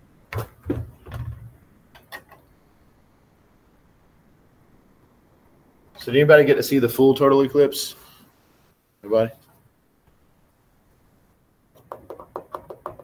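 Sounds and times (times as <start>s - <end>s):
knocks and clatters: 0.3s - 2.5s.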